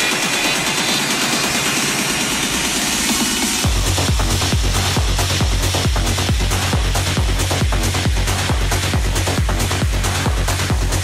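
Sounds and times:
dense noisy synth wash: 0.0s - 11.0s.

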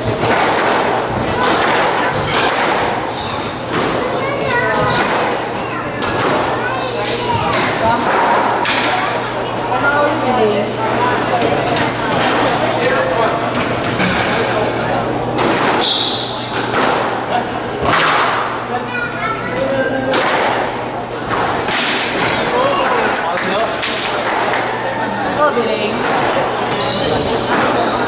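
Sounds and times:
distant voices: 0.0s - 28.0s.

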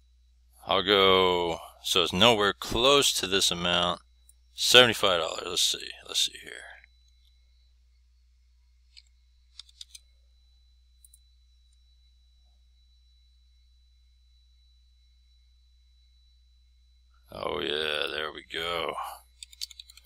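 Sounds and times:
keyboard and mouse clicks: 8.9s - 10.0s, 19.4s - 20.0s.

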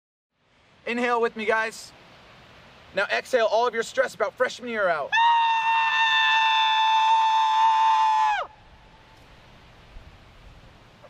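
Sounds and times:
person wailing shrilly: 5.1s - 8.5s.

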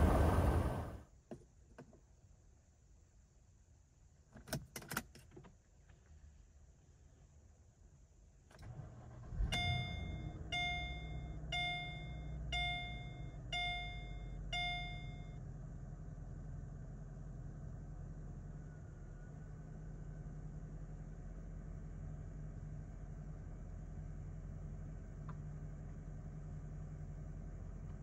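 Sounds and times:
car engine starting and idling: 0.0s - 1.0s, 8.5s - 28.0s
dashboard warning chime: 9.5s - 15.4s.

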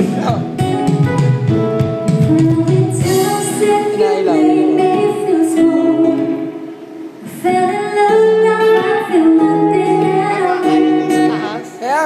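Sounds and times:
acoustic guitar accompaniment: 0.0s - 12.0s
woman singing into a microphone: 2.1s - 11.8s.

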